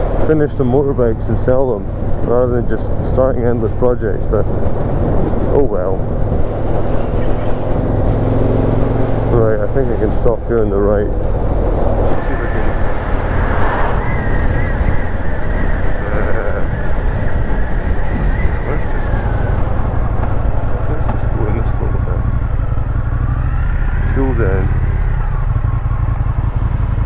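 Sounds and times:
motorcycle engine running: 0:18.6 - 0:27.0.

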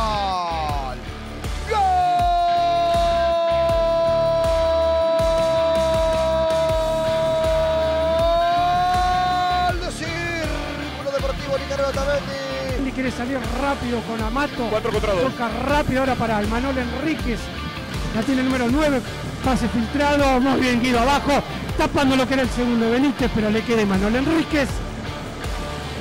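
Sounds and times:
excited commentary: 0:00.0 - 0:24.8
commentator's drawn-out goal cry: 0:01.6 - 0:10.8.

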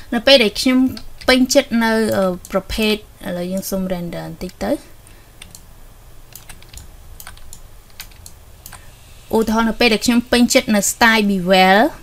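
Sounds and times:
low steady hum: 0:00.0 - 0:12.0
keyboard and mouse clicking: 0:05.4 - 0:05.6, 0:06.3 - 0:08.8.

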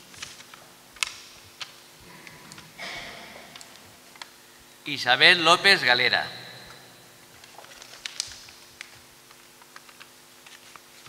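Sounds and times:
paper crackling: 0:00.0 - 0:01.7, 0:07.3 - 0:11.0.

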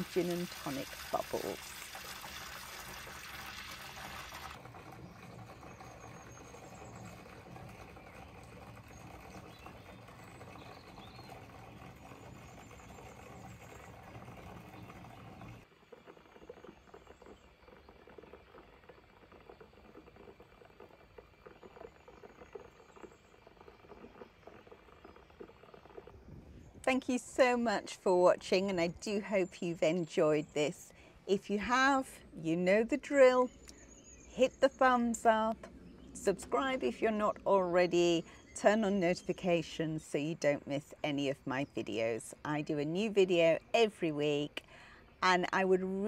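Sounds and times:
tap water pouring into bathtub: 0:00.0 - 0:26.2.

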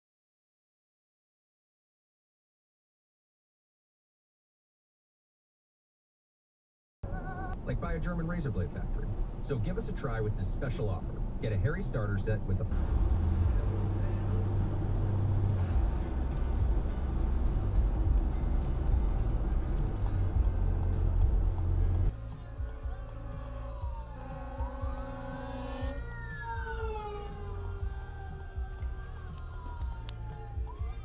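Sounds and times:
car road rumble: 0:07.0 - 0:31.0
emergency sirens wailing: 0:22.4 - 0:31.0.

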